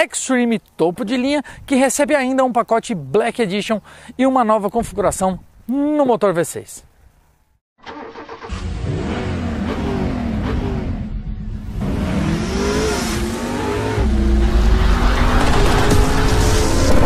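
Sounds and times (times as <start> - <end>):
car engine starting and revving: 7.8 - 17.0.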